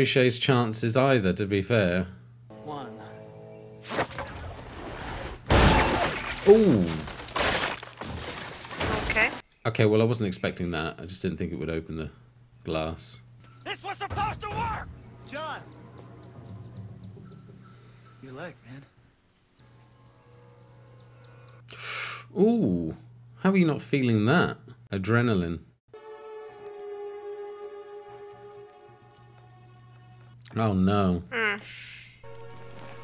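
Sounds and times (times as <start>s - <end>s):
sharp intake of breath: 21.7s - 22.3s.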